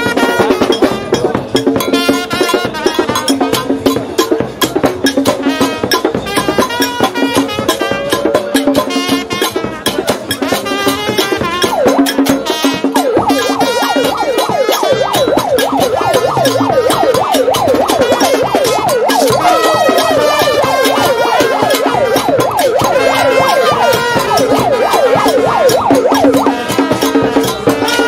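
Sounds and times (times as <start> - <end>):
marching band drums and brass: 0.0 - 28.0
siren-like warble: 10.4 - 28.0.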